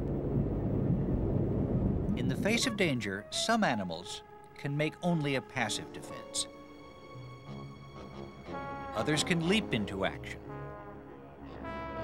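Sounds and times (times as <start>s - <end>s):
low rumble with wavering hum: 0.0s - 2.6s.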